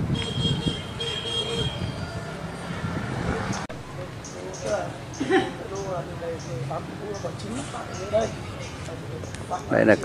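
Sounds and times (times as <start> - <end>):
low traffic rumble: 0.0 - 10.0
distant vehicle horn tooting: 0.1 - 2.2.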